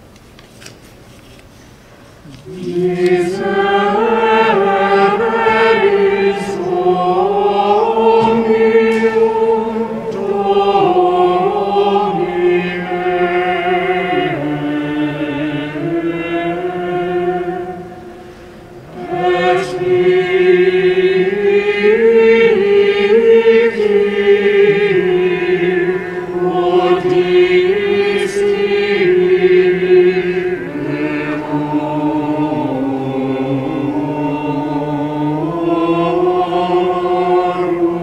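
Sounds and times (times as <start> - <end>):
mixed choir singing a hymn: 2.2 - 38.0.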